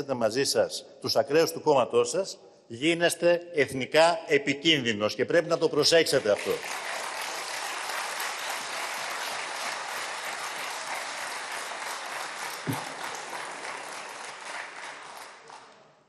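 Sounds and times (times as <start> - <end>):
crowd applauding: 6.1 - 16.0.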